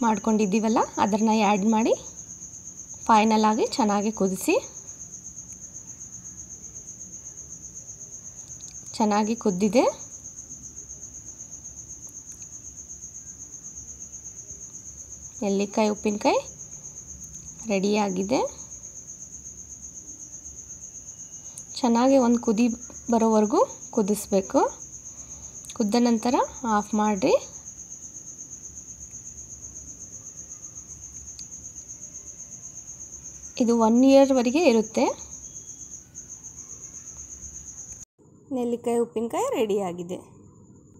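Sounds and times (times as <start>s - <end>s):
insect trilling: 0.0s - 40.9s.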